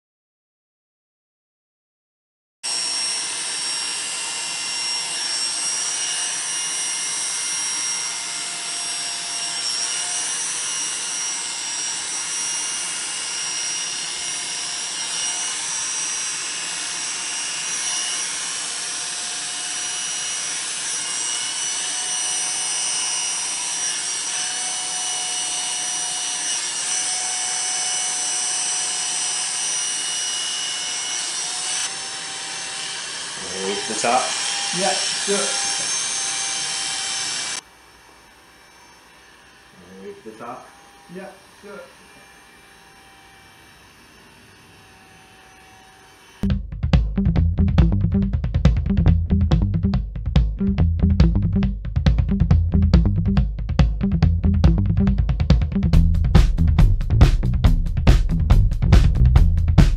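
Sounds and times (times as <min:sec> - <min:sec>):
electric hair clippers buzzing: 0:02.7 - 0:46.5.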